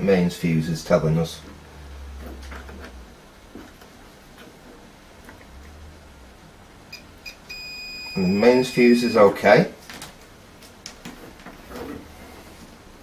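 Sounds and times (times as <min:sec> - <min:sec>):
multimeter continuity beeps: 0:06.9 - 0:09.3
multimeter steady tone: 0:06.9 - 0:09.3.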